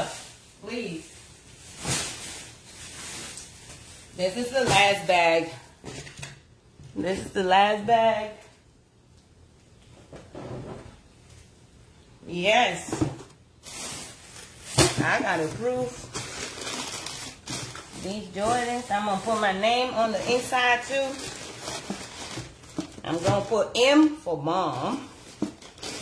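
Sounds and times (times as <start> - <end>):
plastic bag rustling: 0.0 - 6.1, 12.8 - 24.2, 25.0 - 26.0.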